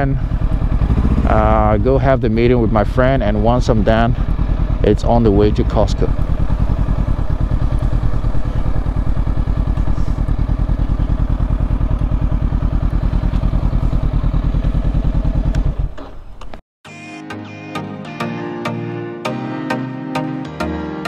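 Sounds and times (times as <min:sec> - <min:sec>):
motorcycle engine running: 0:00.0 - 0:16.6.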